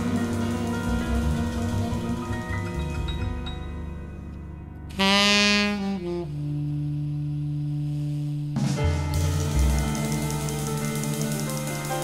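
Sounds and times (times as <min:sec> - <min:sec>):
jazz quartet playing: 0:00.0 - 0:12.0
tenor saxophone long low note: 0:04.9 - 0:09.7.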